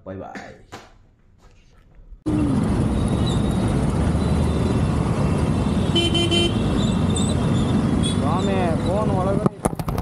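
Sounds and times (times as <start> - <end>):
dense road traffic: 2.2 - 10.0
vehicle horn honk: 5.8 - 6.8.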